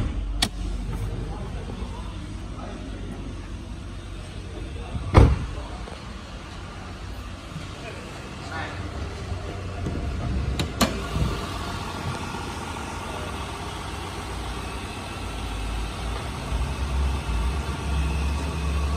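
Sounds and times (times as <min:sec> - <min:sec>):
car engine idling: 0:00.0 - 0:18.9.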